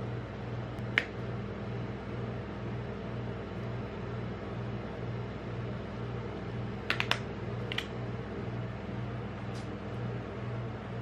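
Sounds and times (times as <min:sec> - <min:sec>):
low refrigeration machine hum: 0:00.0 - 0:11.0.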